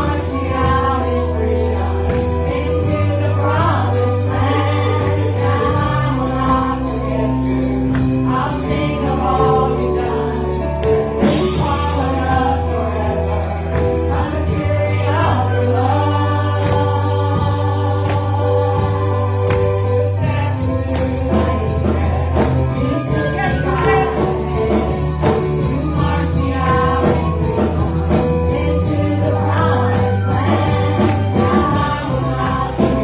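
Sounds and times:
worship band and singers: 0.0 - 33.0.

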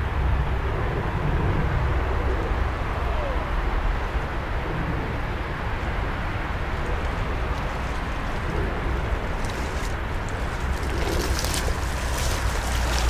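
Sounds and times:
wind rumbling on microphone: 0.0 - 13.0
fish splashing in water: 6.5 - 13.0.

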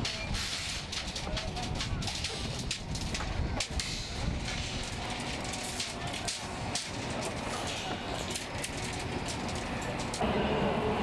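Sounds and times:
engine running: 2.5 - 11.0.

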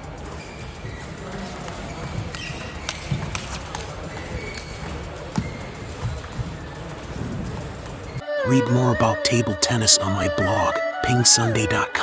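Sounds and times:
table tennis balls tapping: 0.0 - 8.2
hall noise: 0.0 - 12.0.

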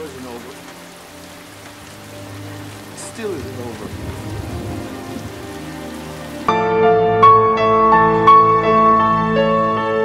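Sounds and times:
heavy rain falling: 0.0 - 10.0
soft film score music: 0.0 - 10.0.

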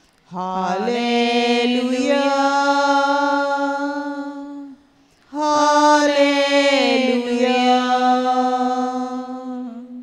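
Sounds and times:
person singing slow chant: 0.2 - 10.0.

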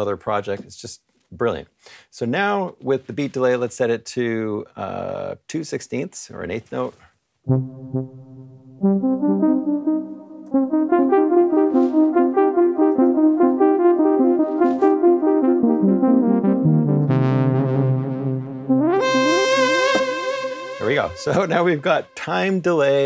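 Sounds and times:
brass-like synthesizer notes with echo: 7.5 - 22.3
low synthesizer note: 7.5 - 22.3.

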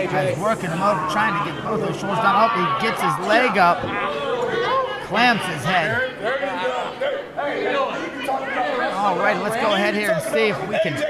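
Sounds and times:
crowd chatter: 0.0 - 11.0
voices talking: 0.0 - 11.0.

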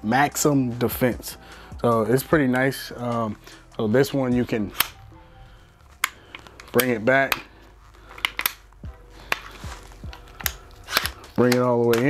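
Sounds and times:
sharp locking clicks: 4.7 - 5.0, 10.4 - 12.0
rifle brace sliding on rods: 6.0 - 12.0.

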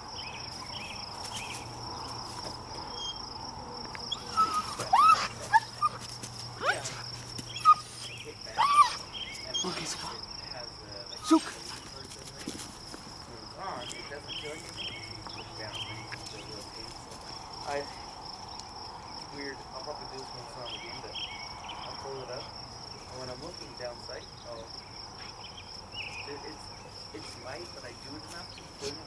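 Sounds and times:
insects chirring: 0.0 - 29.0
puppy yelping and whining: 4.1 - 9.6.

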